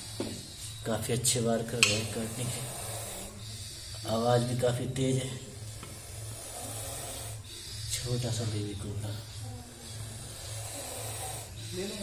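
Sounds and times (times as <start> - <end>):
low steady hum: 0.0 - 12.0
snake hissing: 0.0 - 12.0.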